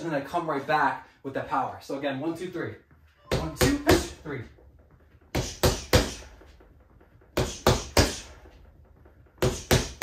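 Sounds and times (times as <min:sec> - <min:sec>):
punches hitting punching bag: 0:05.3 - 0:10.0.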